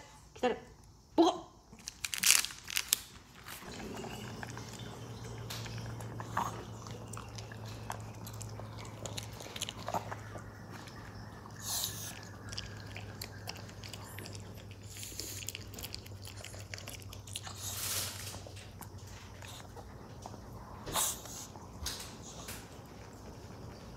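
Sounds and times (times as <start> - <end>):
steady low hum: 3.2 - 23.9
dog chewing: 3.4 - 23.9.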